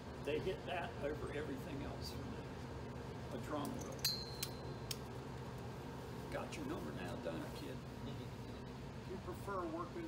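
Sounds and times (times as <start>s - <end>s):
low room hum: 0.0s - 10.0s
thin high ring: 3.8s - 4.9s.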